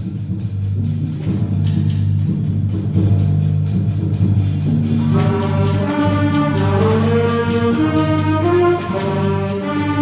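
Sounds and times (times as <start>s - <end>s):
concert band holding low chords: 0.0s - 10.0s.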